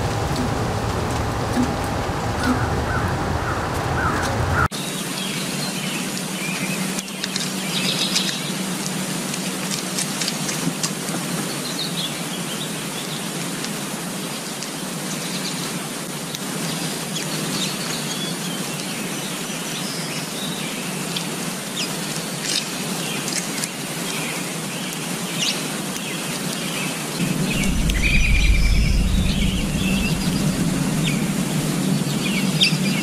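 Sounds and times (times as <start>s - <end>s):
small birds chirping: 17.1s - 33.0s.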